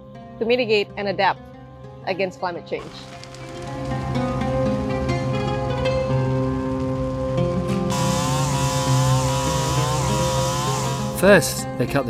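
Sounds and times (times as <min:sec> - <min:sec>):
background music: 0:00.0 - 0:12.0
chainsaw cutting log: 0:07.9 - 0:11.4.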